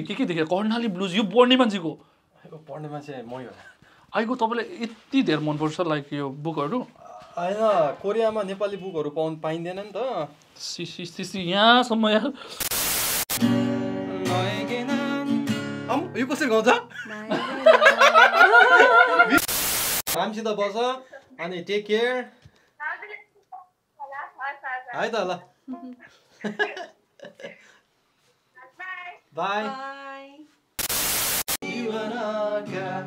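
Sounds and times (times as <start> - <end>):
static hiss: 12.5 - 13.5, 19.3 - 20.2, 30.8 - 31.6
acoustic guitar strummed: 13.4 - 16.2
acoustic guitar: 13.4 - 17.7, 31.6 - 33.0
person singing: 14.0 - 15.5, 31.6 - 33.0
man and woman laughing: 16.8 - 19.5, 26.4 - 27.7.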